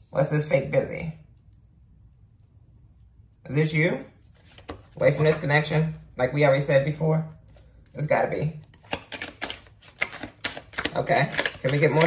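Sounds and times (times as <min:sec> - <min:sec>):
cards being shuffled: 0:04.2 - 0:05.5, 0:08.6 - 0:12.0.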